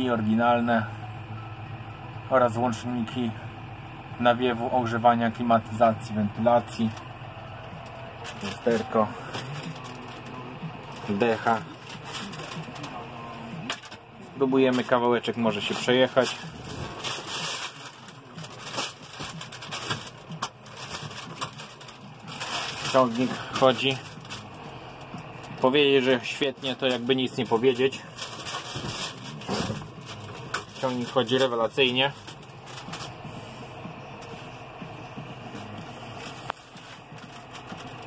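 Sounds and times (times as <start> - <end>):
tractor diesel engine idling: 0.0 - 38.0.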